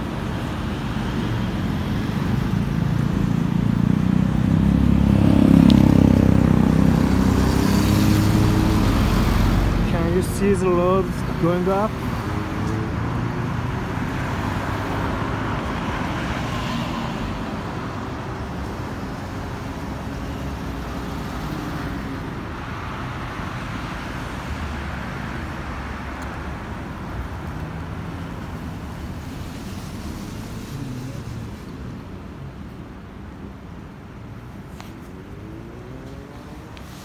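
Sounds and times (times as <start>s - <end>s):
cars driving past: 0.0s - 37.0s.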